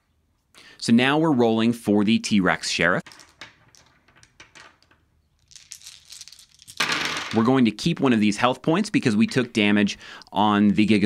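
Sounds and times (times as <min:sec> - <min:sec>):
dice knocking together in hand: 0:03.1 - 0:07.5.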